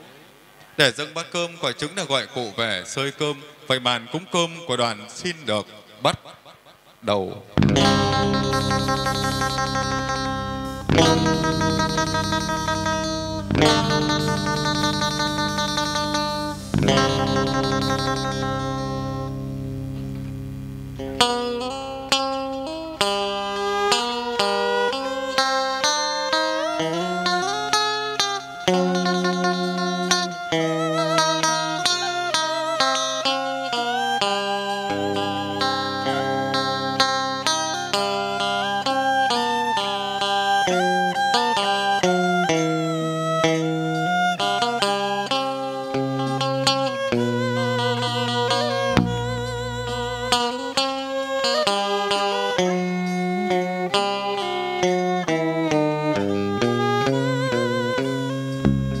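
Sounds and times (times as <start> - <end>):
plucked string instrument music: 7.5 - 59.0.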